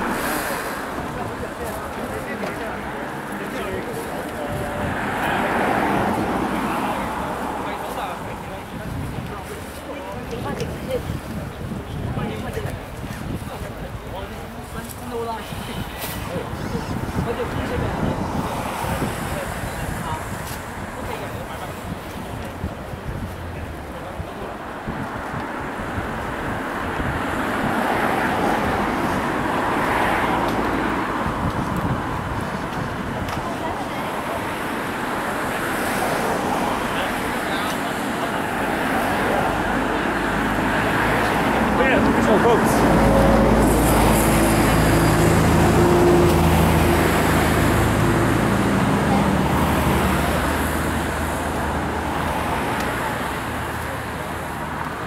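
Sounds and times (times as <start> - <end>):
outdoor background noise: 0.0 - 55.0.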